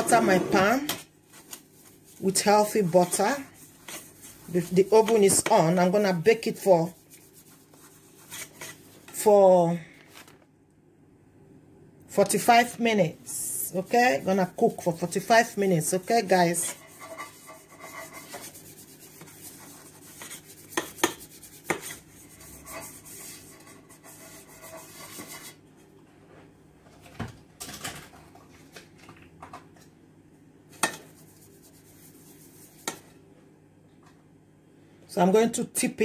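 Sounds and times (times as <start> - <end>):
pastry brush scratching metal pan: 0.0 - 9.4, 13.3 - 25.6, 30.8 - 33.2.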